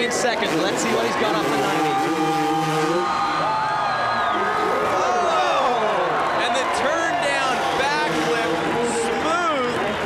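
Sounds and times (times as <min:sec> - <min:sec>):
dirt bike engine revving: 0:00.0 - 0:03.7, 0:07.4 - 0:09.8
crowd cheering and whooping: 0:00.3 - 0:10.0.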